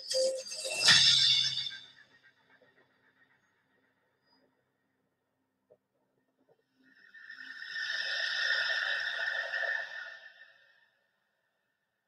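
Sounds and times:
hissy ringing soundtrack tone: 0:00.0 - 0:02.0.

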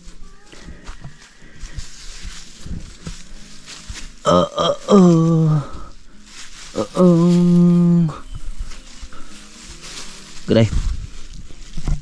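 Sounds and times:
man speaking: 0:10.5 - 0:10.8.

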